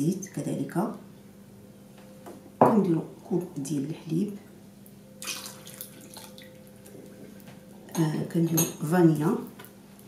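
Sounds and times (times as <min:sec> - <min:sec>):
milk pouring into a bowl: 0:05.2 - 0:07.4.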